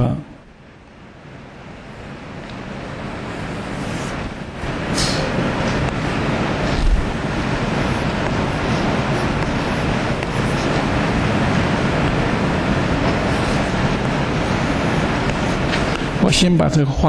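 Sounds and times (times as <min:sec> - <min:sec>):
steady rumbling: 0:00.0 - 0:17.0.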